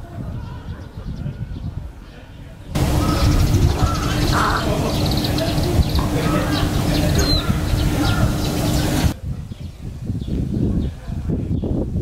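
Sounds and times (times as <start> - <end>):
wind rumble on microphone: 0.0 - 12.0
bird calls: 2.8 - 9.2.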